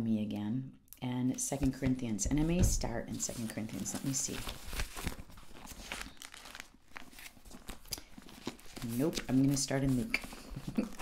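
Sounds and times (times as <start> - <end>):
thin pages rustling: 3.1 - 11.0.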